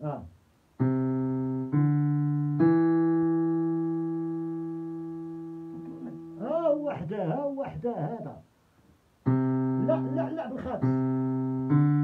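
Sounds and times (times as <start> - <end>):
digital piano notes held: 0.7 - 7.6, 9.2 - 12.0.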